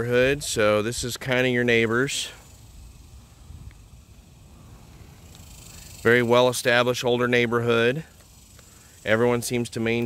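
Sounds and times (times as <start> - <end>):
faint steady high hiss: 0.0 - 10.0.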